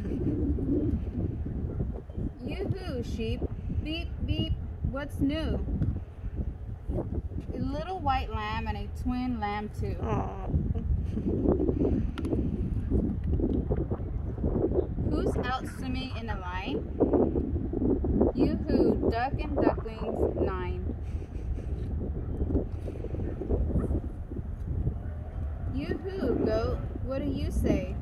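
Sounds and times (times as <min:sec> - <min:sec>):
wind rumble on microphone: 0:00.0 - 0:28.0.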